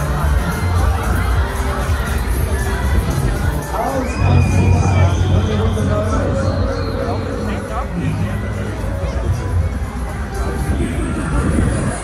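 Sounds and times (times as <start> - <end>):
fairground ride music: 0.0 - 12.0.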